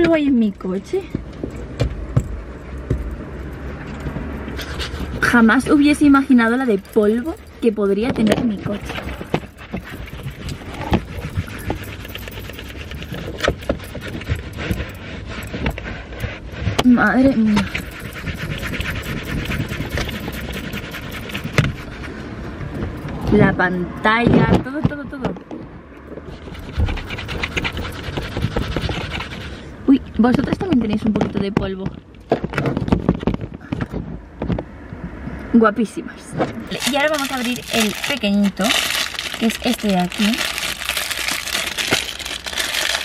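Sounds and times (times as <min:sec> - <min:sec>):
knocks and taps: 0:01.2 - 0:03.2
duster brushing over dashboard: 0:26.4 - 0:30.5.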